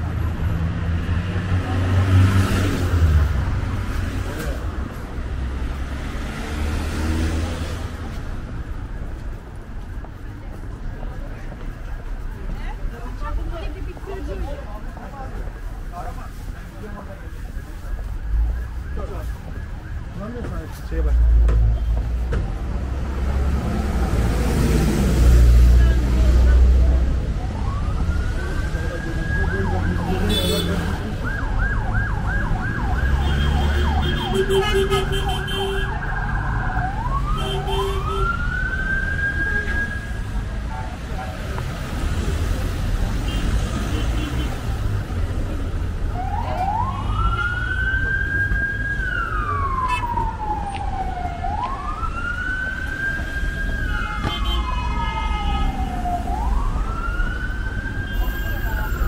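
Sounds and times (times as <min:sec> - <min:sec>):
emergency vehicle siren: 0:00.0 - 0:59.0
street traffic: 0:00.0 - 0:59.0.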